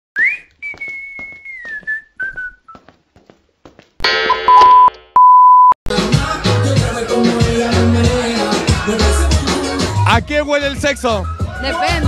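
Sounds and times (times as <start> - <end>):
steady pure beep: 4.2 - 5.8
music: 5.9 - 12.0.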